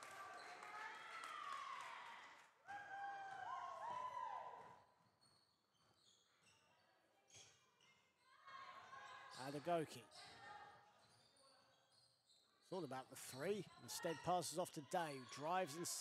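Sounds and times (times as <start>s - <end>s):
shoes squeaking on court: 5.2s - 8.1s.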